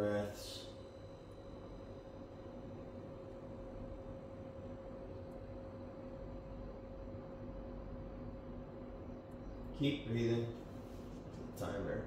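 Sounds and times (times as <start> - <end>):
faint constant whine: 0.0 - 12.0
low hum: 0.0 - 12.0.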